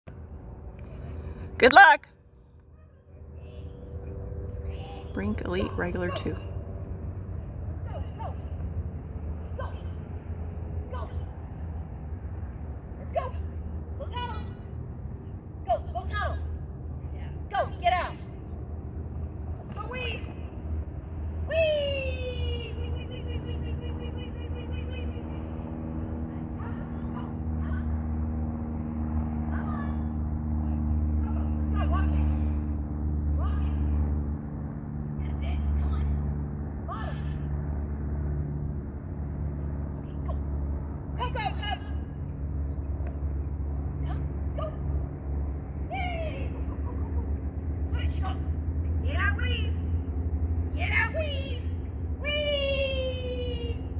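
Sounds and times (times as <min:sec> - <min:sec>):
steady low rumble: 0:00.1 - 0:53.9.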